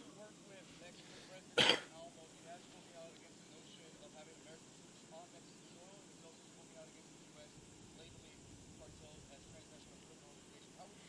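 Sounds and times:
faint distant speech: 0.0 - 11.0
person clearing throat: 1.6 - 1.9.

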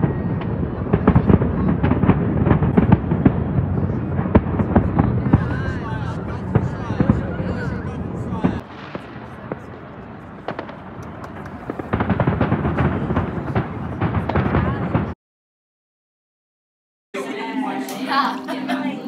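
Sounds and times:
crowd voices: 0.0 - 15.2, 17.2 - 19.0
fireworks bangs and crackling: 0.0 - 15.2.

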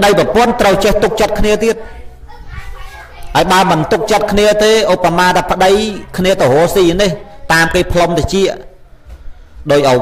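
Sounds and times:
man talking: 0.0 - 1.8, 3.3 - 8.8, 9.6 - 10.0.

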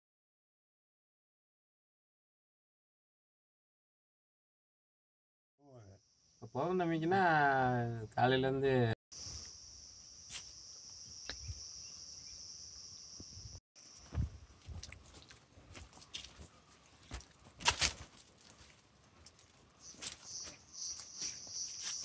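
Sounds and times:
insects droning: 9.1 - 14.7, 19.8 - 22.0
footsteps in dry undergrowth: 13.8 - 22.0.

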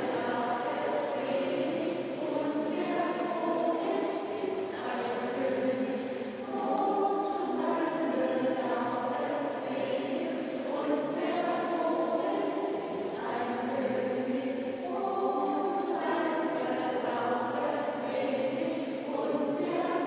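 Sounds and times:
choir singing held chords: 0.0 - 20.0.

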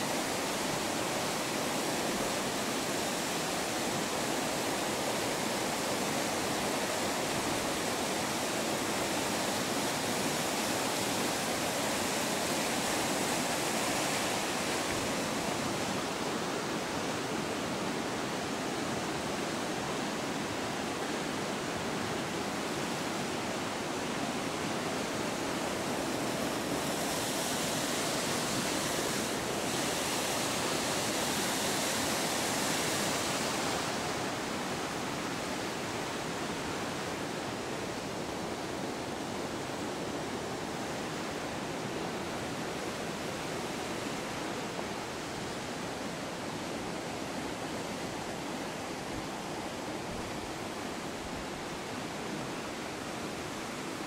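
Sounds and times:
water rushing over weir: 0.0 - 54.0.

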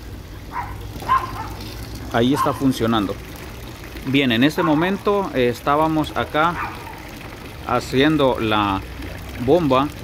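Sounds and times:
water running from a pipe: 0.0 - 10.0.

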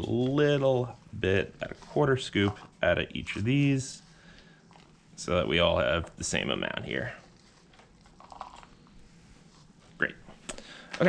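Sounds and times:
soft rustle of potting soil: 0.0 - 10.0.

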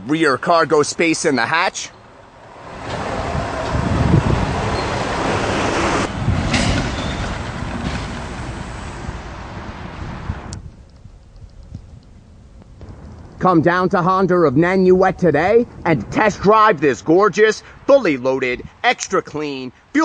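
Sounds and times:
road traffic noise: 0.0 - 13.5, 14.5 - 20.0.

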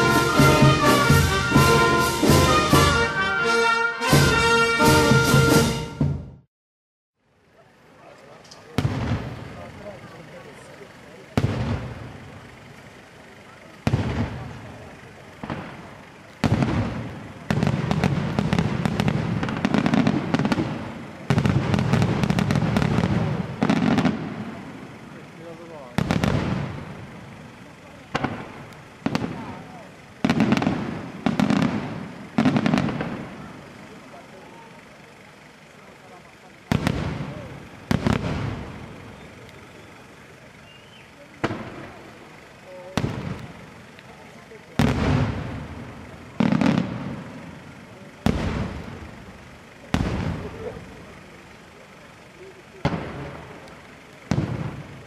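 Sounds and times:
firework shells bursting: 13.6 - 34.0, 36.5 - 55.0.

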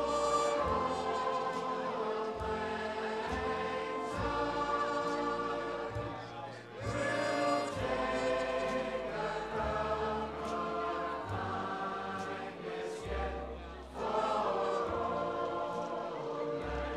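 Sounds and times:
choir holding long notes: 0.0 - 16.9.

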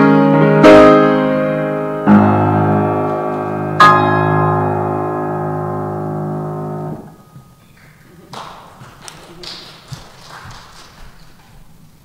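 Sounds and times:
piano chord: 0.0 - 7.6.

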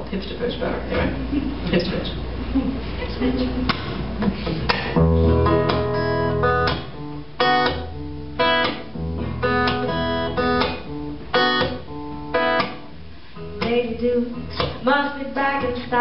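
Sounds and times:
acoustic guitar strumming chords: 3.7 - 16.0.

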